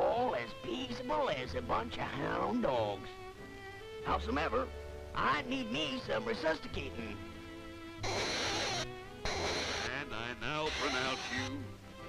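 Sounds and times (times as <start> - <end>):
orchestral music: 3.5 - 12.0.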